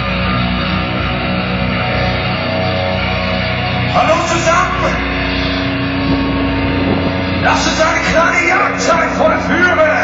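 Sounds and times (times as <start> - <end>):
distorted heavy metal chord: 0.0 - 10.0.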